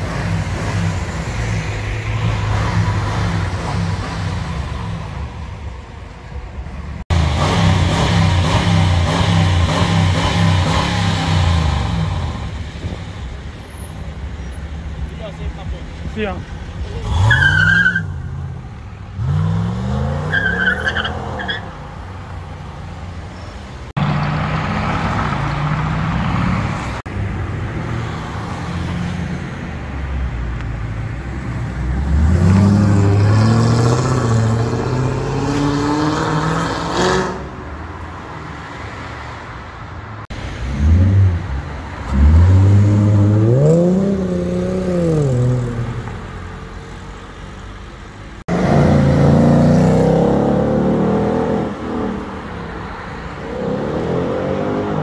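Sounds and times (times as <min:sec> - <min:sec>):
car engines revving: 0:00.0 - 0:55.0
tyre squeal: 0:20.3 - 0:21.7.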